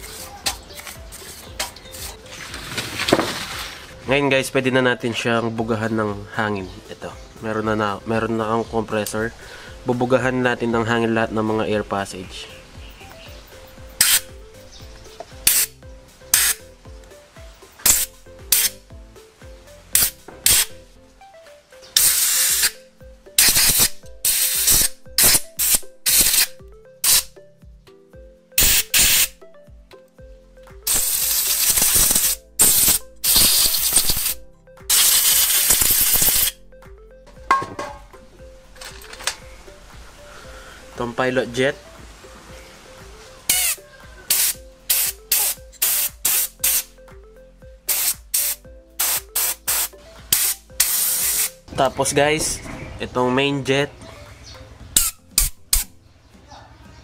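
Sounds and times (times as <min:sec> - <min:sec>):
compressed air blow gun hissing: 0:13.9 - 0:14.3, 0:15.4 - 0:16.7, 0:17.8 - 0:18.8, 0:19.9 - 0:20.8, 0:22.0 - 0:22.8, 0:23.4 - 0:27.3, 0:28.6 - 0:29.4, 0:30.9 - 0:36.6, 0:43.5 - 0:46.9, 0:47.9 - 0:51.6.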